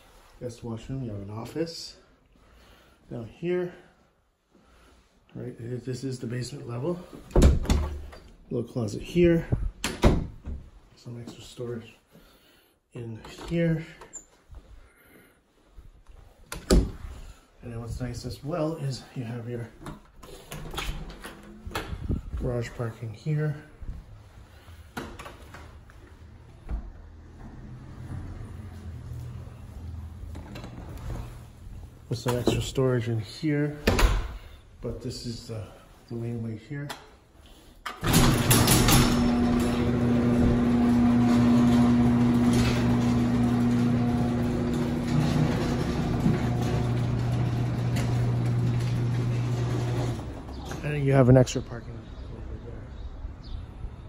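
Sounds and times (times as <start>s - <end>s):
garage door clatter: 19.9s - 22.3s, 37.9s - 51.1s
garage door motor hum: 25.7s - 31.8s, 38.0s - 50.9s.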